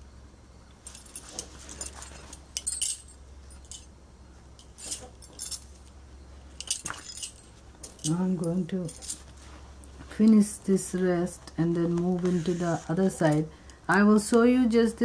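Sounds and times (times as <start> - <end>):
bangles jingling and clinking: 0.8 - 4.0, 4.6 - 5.9, 6.5 - 9.5.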